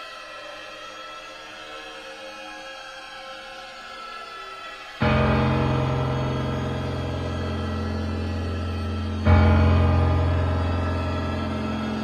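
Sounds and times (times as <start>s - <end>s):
held low chord: 5.0s - 12.0s.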